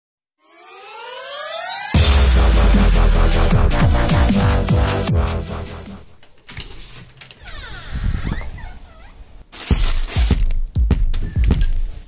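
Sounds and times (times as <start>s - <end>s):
synth riser climbing: 0.4s - 6.2s
heavy dubstep bass drop: 1.7s - 6.0s.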